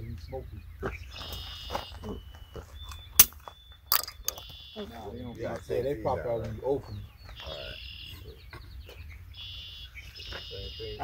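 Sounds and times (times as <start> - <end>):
bird song with buzzy trills: 0.0 - 11.0.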